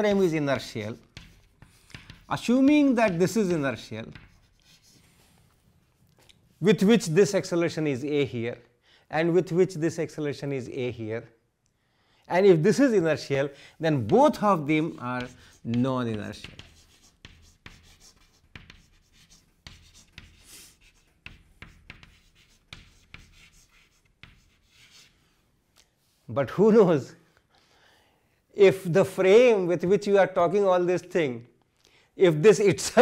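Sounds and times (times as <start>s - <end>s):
chalk scratching on blackboard: 0.0s - 5.6s, 13.8s - 25.3s.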